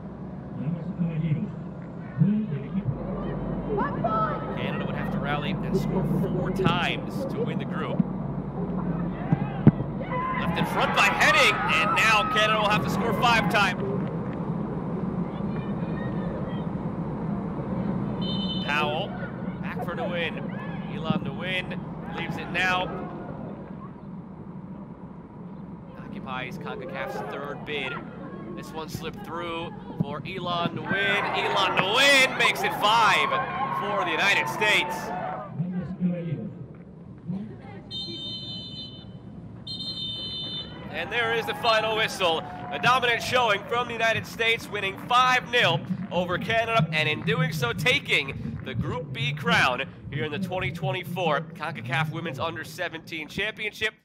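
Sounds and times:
background crowd rumble: 0.0 - 54.0
distant shouts: 2.0 - 13.9, 15.1 - 24.1, 25.8 - 36.0, 37.4 - 49.8
referee's whistle blasts: 18.2 - 18.8, 37.9 - 39.1, 39.7 - 40.8.

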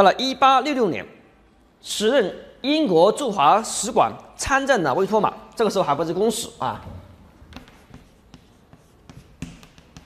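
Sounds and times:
chalk tapping on blackboard: 7.3 - 10.0.

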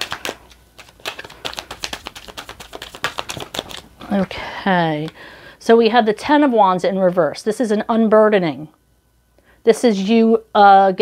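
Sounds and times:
cards being shuffled: 0.0 - 4.3.

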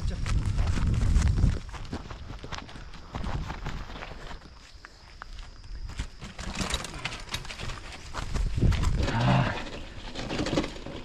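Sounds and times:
bike tyres on dirt trail: 0.0 - 11.0.

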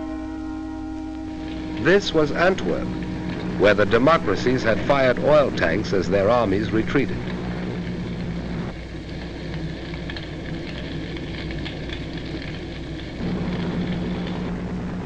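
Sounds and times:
large fire crackling: 0.0 - 15.0
low steady hum: 0.0 - 15.0.

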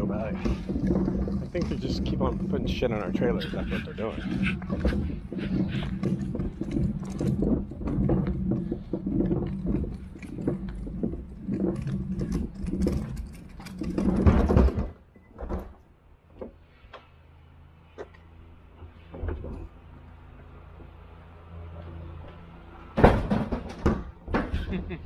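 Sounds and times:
scattered knocks: 0.0 - 15.0, 22.9 - 25.0
mechanical rattling and clattering: 0.0 - 16.9.

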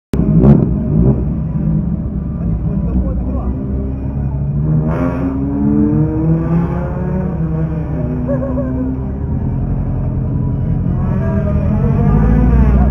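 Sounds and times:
car engine running: 0.1 - 12.9.

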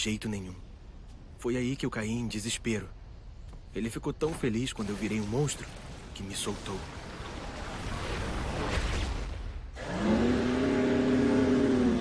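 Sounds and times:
monster roaring: 9.8 - 12.0.

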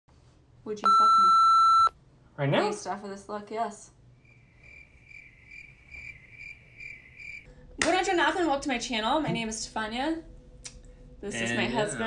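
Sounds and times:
cricket chirping: 4.2 - 7.5.

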